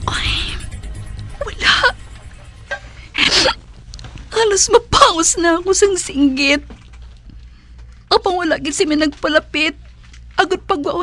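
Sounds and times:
woman speaking: 0.0 - 0.8, 1.4 - 2.0, 4.3 - 6.7, 8.1 - 9.8, 10.4 - 11.0.

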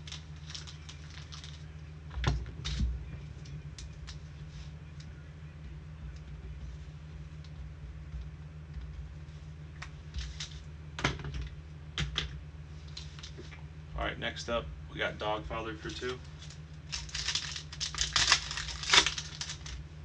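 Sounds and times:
card pack wrapper crinkling: 0.0 - 1.7, 16.4 - 19.8
wrapper ripping: 0.0 - 1.7, 16.4 - 19.8
low electrical hum: 0.0 - 20.0.

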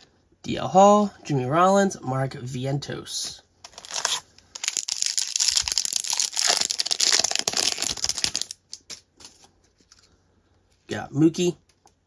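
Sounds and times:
wrapper tearing and crinkling: 3.6 - 9.4
cards rustling: 3.6 - 10.2.

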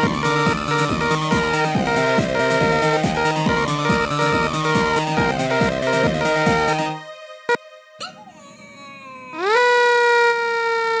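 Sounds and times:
remix beat: 0.0 - 8.3
cartoon character screaming: 8.0 - 11.0.

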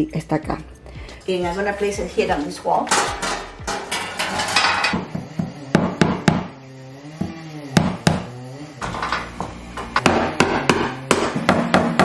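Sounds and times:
hammer striking a nail: 5.0 - 6.5, 7.2 - 8.3, 10.0 - 12.0.

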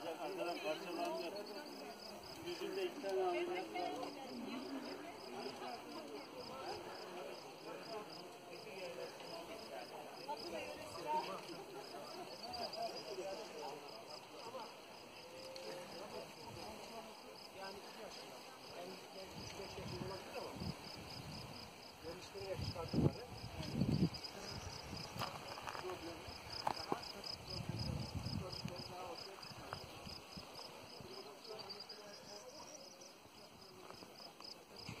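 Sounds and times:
insects chirping: 0.0 - 34.9
people talking over one another: 0.0 - 35.0.

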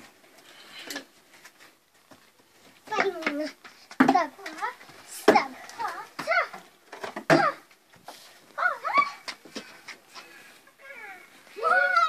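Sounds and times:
children shouting: 10.8 - 12.0.

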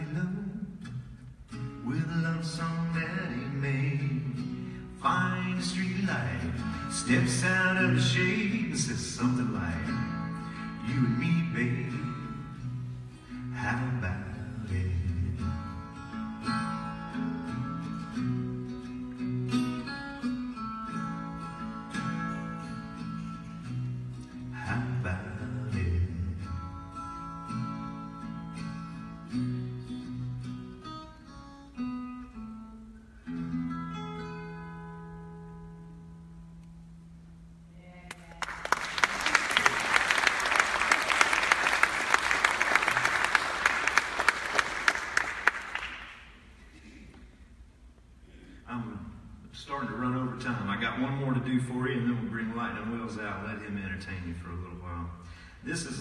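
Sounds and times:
acoustic guitar playing: 0.0 - 37.8, 47.5 - 56.0
audience applause: 38.1 - 46.3.

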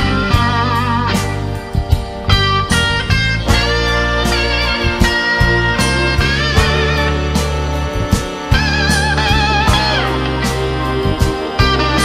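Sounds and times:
bass notes: 0.0 - 12.0
electric guitar vibrato notes: 0.0 - 12.0
drum hits: 1.2 - 12.0.

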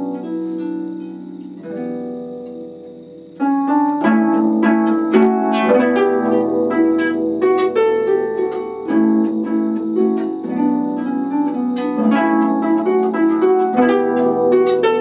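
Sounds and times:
harp plucked notes and chords: 0.0 - 15.0.

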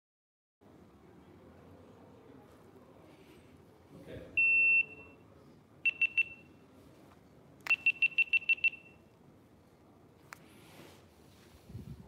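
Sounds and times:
electronic beeps: 5.9 - 6.5, 7.7 - 9.0.

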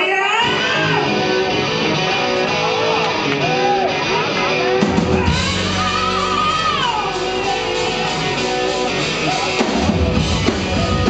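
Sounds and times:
rock band playing: 0.0 - 11.0
electric guitar sustained notes: 0.4 - 11.0.

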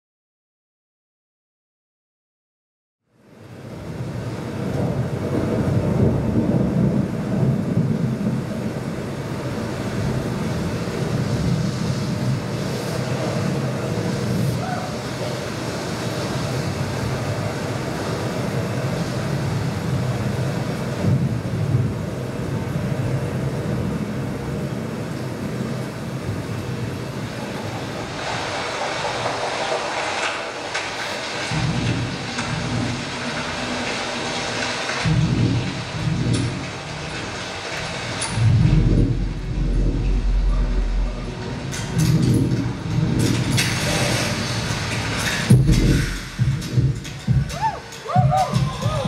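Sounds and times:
rumbling noisy soundscape: 3.1 - 49.0
deep bass thuds: 35.1 - 36.5, 38.4 - 43.6, 45.5 - 47.6.

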